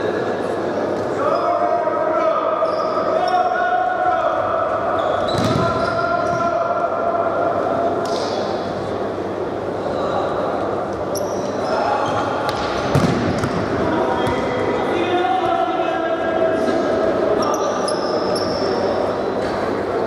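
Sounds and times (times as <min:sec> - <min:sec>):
shoes squeaking on court floor: 0:04.9 - 0:06.4, 0:11.1 - 0:14.6, 0:17.4 - 0:18.8
ball strike: 0:12.5 - 0:14.5.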